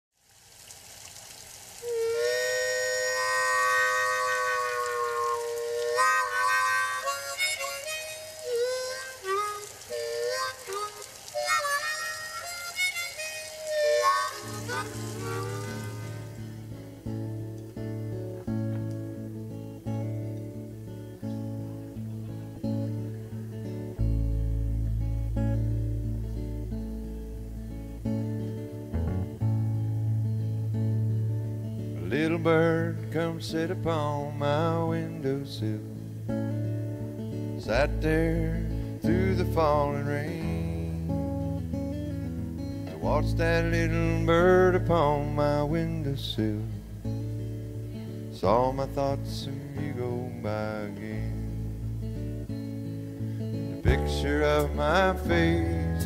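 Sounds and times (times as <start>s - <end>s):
harmonica melody: 1.8s - 31.8s, 52.2s - 56.0s
acoustic guitar strumming: 1.8s - 56.0s.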